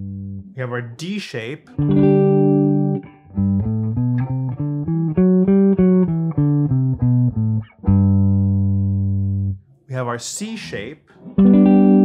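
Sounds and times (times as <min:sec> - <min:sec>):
electric guitar playing a scale: 0:01.7 - 0:09.6, 0:11.2 - 0:12.0.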